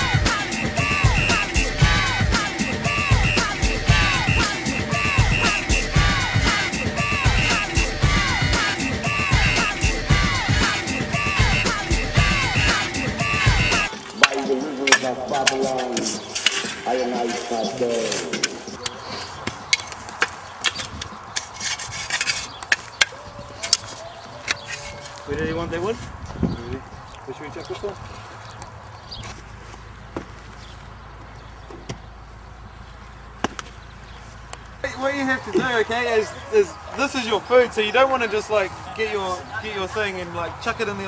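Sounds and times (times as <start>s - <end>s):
rock song with singing: 0.0s - 13.9s
men talking: 0.0s - 19.6s, 25.2s - 28.1s, 34.8s - 41.0s
shovels clinking in soil and stones: 13.9s - 25.2s.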